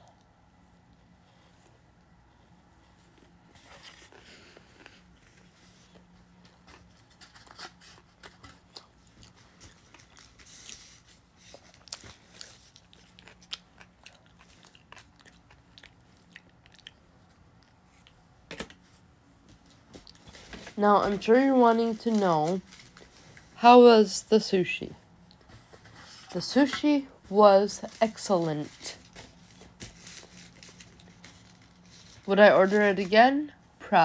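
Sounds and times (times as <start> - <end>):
close chewing mouth sounds: 8.3 - 18.2.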